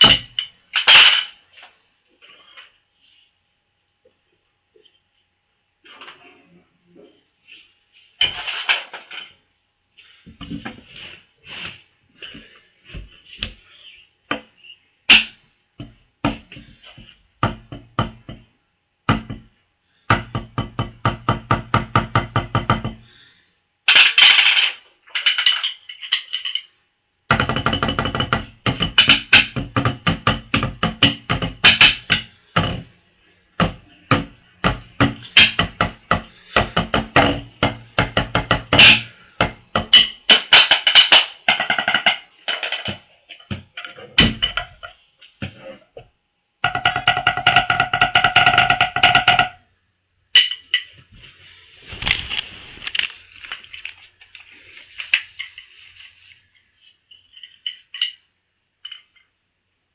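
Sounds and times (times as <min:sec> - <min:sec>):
drumsticks tapping practice pad: 0:15.1 - 0:18.5, 0:27.3 - 0:32.9, 0:33.6 - 0:42.8, 0:46.6 - 0:49.6.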